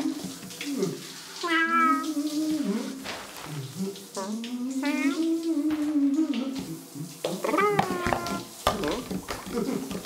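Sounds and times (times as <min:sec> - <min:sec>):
person imitating cat mewing: 0:01.4 - 0:02.9, 0:04.2 - 0:06.7, 0:07.4 - 0:09.2.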